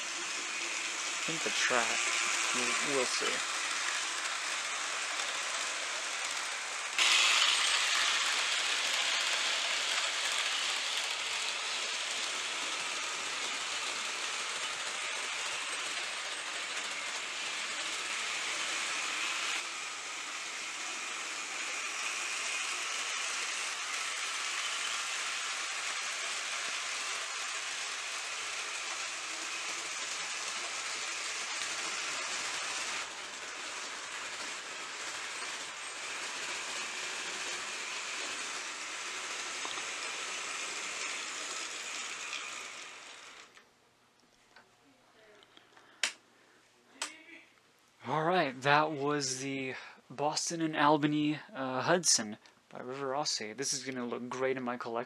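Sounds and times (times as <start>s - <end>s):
model train whirring rattle: 0.0s - 43.6s.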